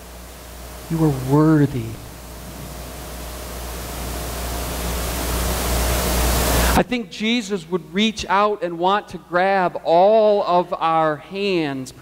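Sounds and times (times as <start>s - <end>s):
low hum: 0.0s - 6.9s
steady hiss: 0.0s - 12.0s
person speaking: 0.9s - 2.1s.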